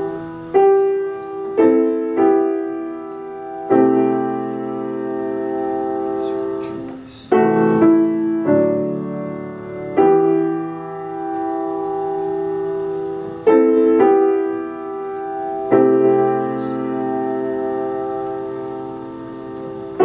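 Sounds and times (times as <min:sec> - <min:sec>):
grand piano playing slow chords: 0:00.0 - 0:20.0.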